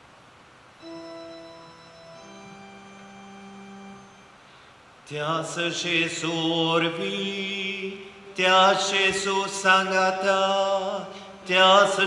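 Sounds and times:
sustained organ notes: 0.8 - 12.0.

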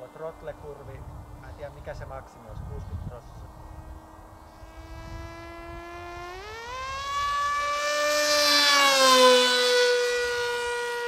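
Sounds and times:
model plane motor whining: 4.3 - 11.0.

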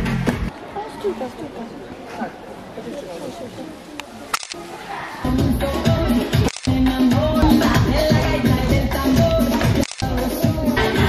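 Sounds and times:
murmur of audience voices: 0.0 - 11.0.

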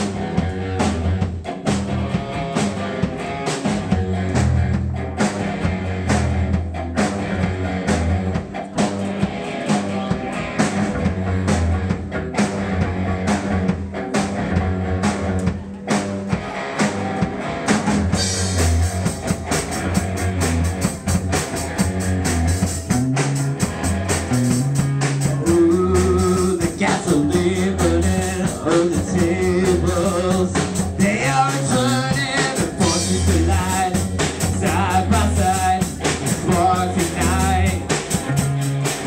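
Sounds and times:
bass guitar: 0.0 - 39.0
drum kit beat: 0.0 - 39.0
electric guitar: 0.0 - 39.0.

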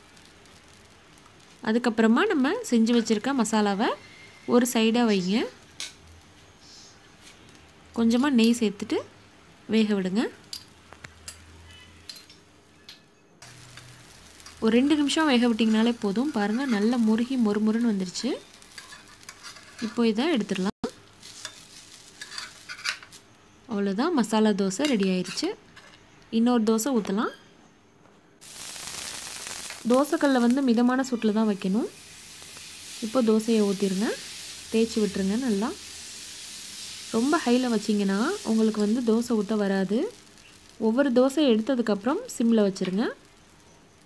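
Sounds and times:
small crackles: 0.0 - 3.4, 10.4 - 23.3, 28.4 - 44.0
dosa sizzling on hot iron: 0.0 - 23.9, 28.4 - 44.0.

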